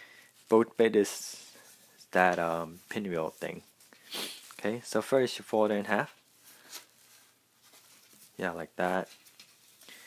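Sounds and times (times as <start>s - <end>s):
paper being folded: 5.7s - 10.0s.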